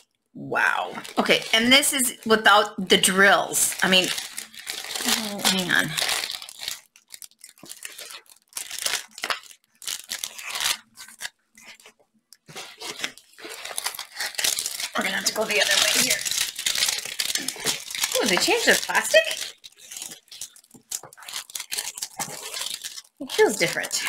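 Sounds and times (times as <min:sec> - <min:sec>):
plastic film crinkling: 0:00.0 - 0:24.0.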